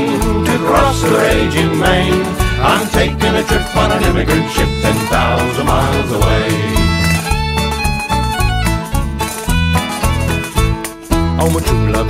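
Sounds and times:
folk band instrumental: 0.0s - 12.0s.

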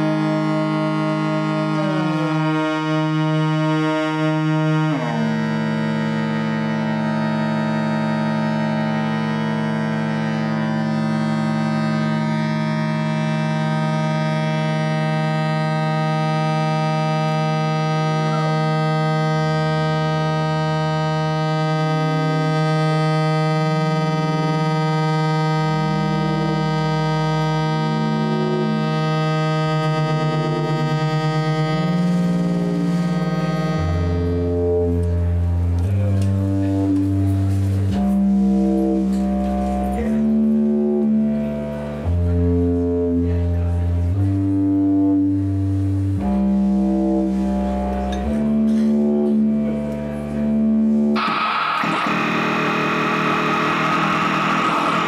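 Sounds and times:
low bass notes: 0.0s - 55.0s
synthesizer drone: 0.0s - 55.0s.

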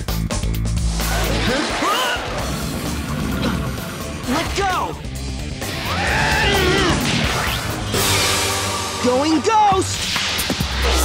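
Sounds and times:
action background music: 0.0s - 11.0s.

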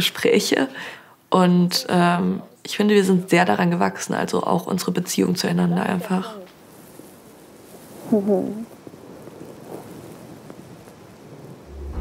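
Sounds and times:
soft hiss of outdoor background: 0.0s - 12.0s
music with deep bass: 11.7s - 12.0s.

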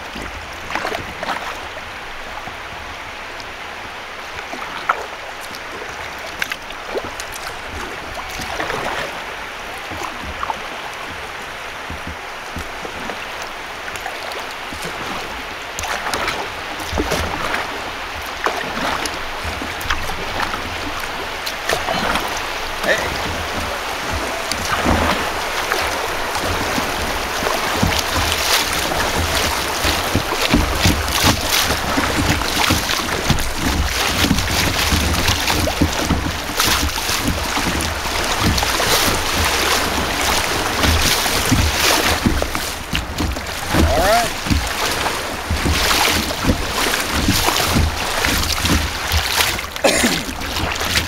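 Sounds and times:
wind rumbling on microphone: 0.0s - 49.8s
water rushing and splashing: 0.0s - 51.0s.

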